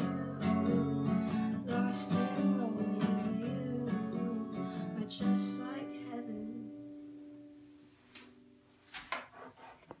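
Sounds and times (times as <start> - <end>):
acoustic guitar chord ringing: 0.0 - 8.5.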